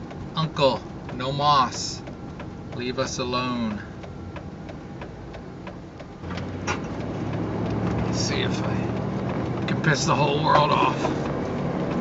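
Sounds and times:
faint regular ticking: 0.0s - 12.0s
road noise: 0.0s - 12.0s
vehicle engine hum: 0.0s - 12.0s.

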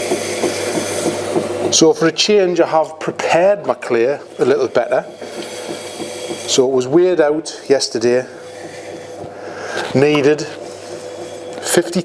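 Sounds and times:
electric potter's wheel buzzing: 0.0s - 12.0s.

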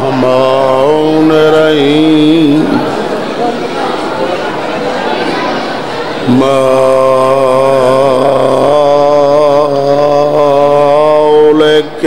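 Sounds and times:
man chanting recitation: 0.0s - 3.7s, 6.2s - 12.0s.

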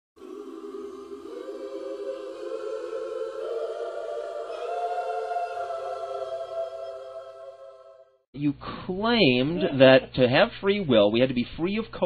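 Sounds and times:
choir singing held chords: 0.2s - 8.3s.

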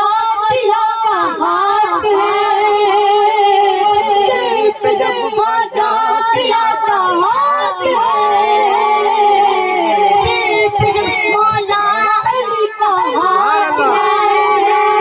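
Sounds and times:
boy singing into microphone: 0.0s - 15.0s.

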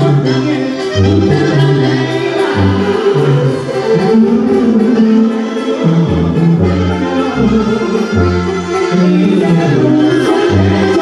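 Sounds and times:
low bass line: 0.0s - 11.0s
wind instruments playing a tune: 0.0s - 11.0s.

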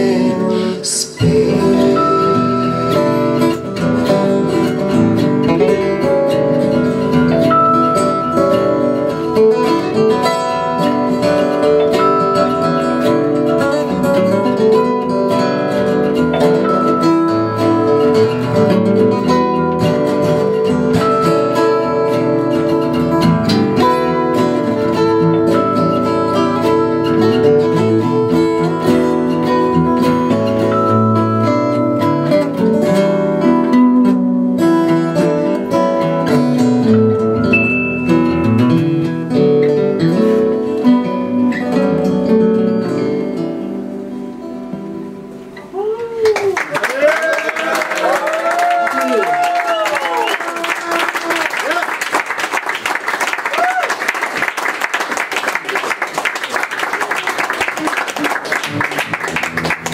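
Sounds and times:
acoustic guitars strumming: 0.0s - 46.6s, 50.4s - 59.9s.

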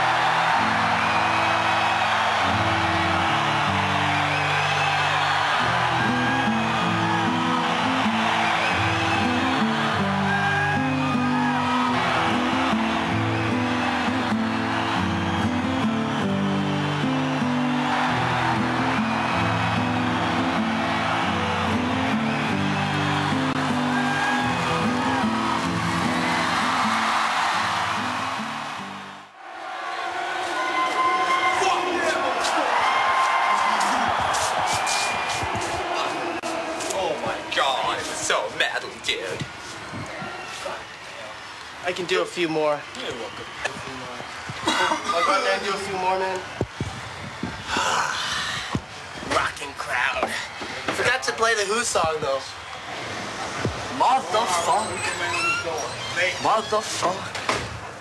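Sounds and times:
crowd screaming and whistling: 0.0s - 58.0s.

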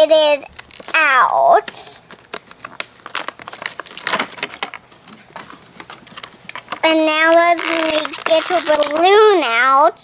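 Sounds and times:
plastic packaging crinkling: 0.4s - 9.3s.

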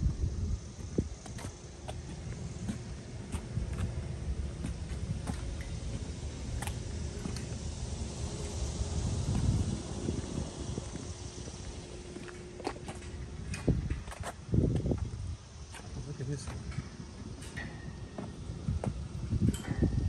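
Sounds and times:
faint hum: 0.0s - 20.0s
steady low rumble: 0.0s - 20.0s
footsteps on brick paving: 0.8s - 7.4s.

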